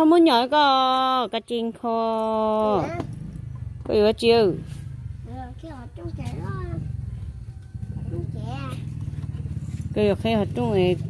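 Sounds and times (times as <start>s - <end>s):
motorcycle engine idling: 1.6s - 11.0s.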